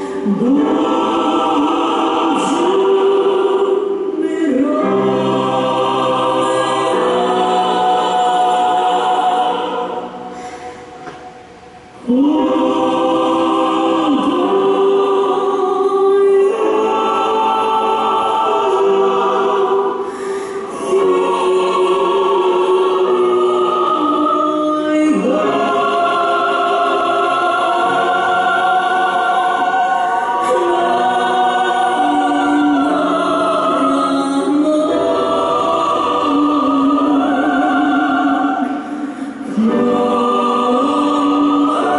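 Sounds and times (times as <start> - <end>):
choir singing long-held chords: 0.0 - 41.9.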